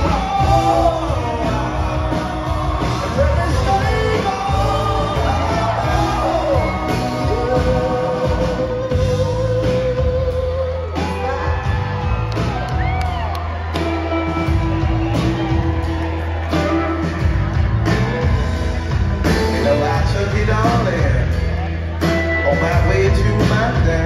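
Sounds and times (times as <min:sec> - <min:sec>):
singer holding long notes: 0:00.0 - 0:12.2
live soul band playing: 0:00.0 - 0:24.0.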